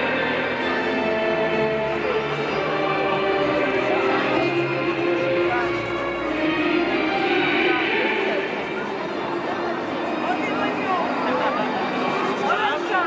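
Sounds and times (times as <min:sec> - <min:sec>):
crowd chatter: 0:00.0 - 0:13.0
faint music: 0:00.0 - 0:13.0.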